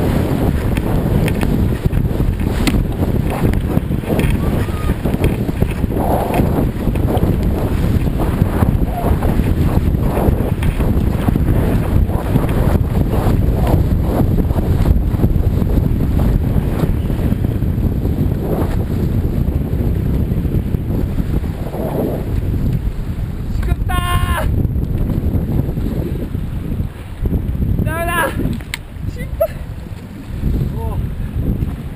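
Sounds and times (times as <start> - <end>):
rushing water: 0.0 - 17.2, 25.9 - 31.9
wind buffeting microphone: 0.0 - 31.9.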